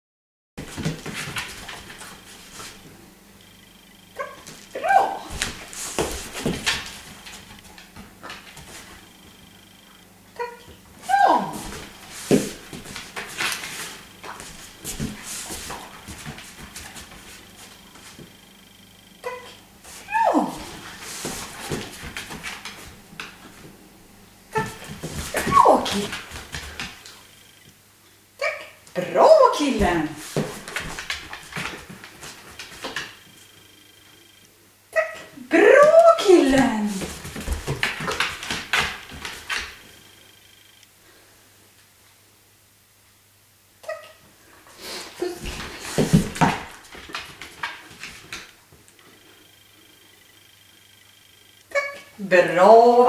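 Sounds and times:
dog paws scuffing on wooden floor: 0:00.6 - 0:02.9, 0:04.3 - 0:09.1, 0:10.8 - 0:18.4, 0:19.8 - 0:23.8, 0:24.6 - 0:27.4, 0:29.4 - 0:33.2, 0:35.9 - 0:40.0, 0:44.9 - 0:48.5
person calling commands: 0:04.2 - 0:05.3, 0:10.4 - 0:11.7, 0:19.2 - 0:20.7, 0:25.4 - 0:26.2, 0:28.4 - 0:30.2, 0:34.9 - 0:37.1
dog claws clicking on wooden floor: 0:37.0 - 0:39.8.

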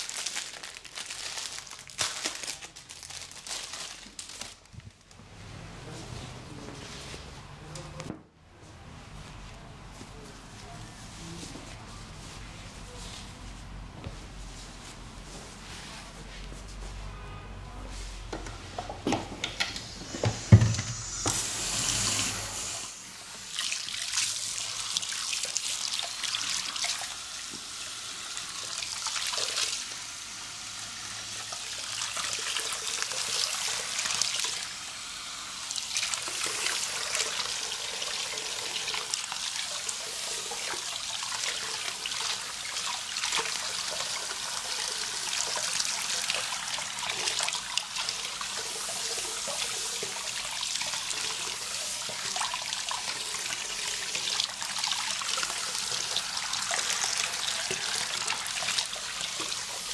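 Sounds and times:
water spraying and splashing: 0:31.2 - 0:59.9.

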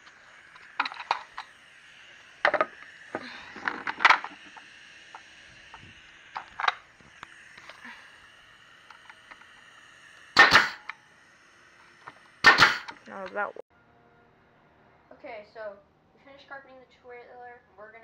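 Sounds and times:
pneumatic staple gun firing: 0:00.0 - 0:01.6, 0:02.4 - 0:08.0, 0:08.8 - 0:11.0, 0:11.8 - 0:13.1.

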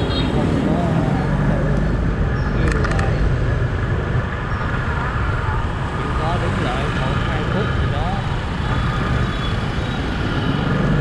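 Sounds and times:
motorbikes and cars passing: 0:00.0 - 0:11.0.

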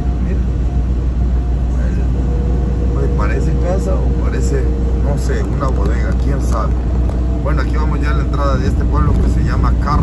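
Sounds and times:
truck engine and road rumble: 0:00.0 - 0:10.0.

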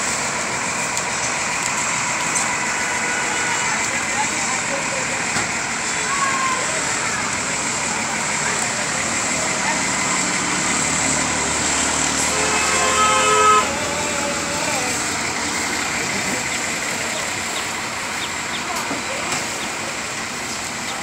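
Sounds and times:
passing traffic: 0:00.0 - 0:21.0
vehicle horn: 0:02.7 - 0:03.9, 0:12.1 - 0:14.1.

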